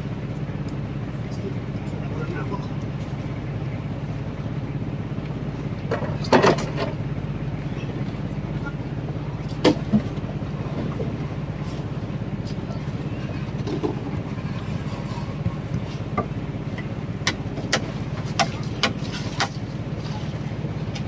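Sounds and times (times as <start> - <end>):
boat engine droning: 0.0 - 21.0.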